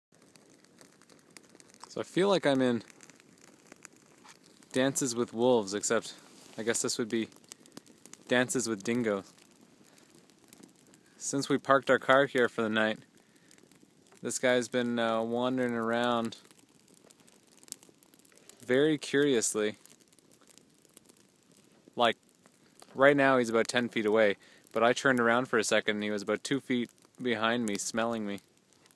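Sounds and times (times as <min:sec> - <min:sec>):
small crackles and clicks: 0:00.1 - 0:28.9
faint rustling: 0:00.2 - 0:11.4.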